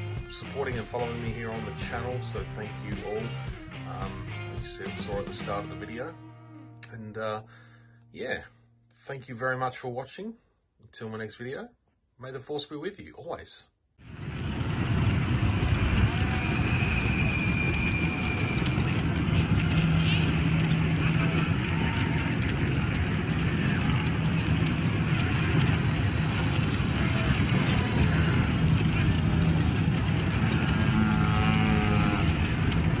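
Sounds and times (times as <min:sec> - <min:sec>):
street rumble and hiss: 0:00.0 - 0:05.8, 0:14.0 - 0:33.0
muffled voices: 0:18.1 - 0:32.6.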